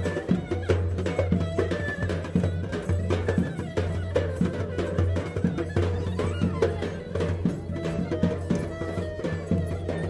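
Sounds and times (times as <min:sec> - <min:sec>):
drum strokes: 0:00.0 - 0:10.0
folk music on instruments: 0:00.0 - 0:10.0.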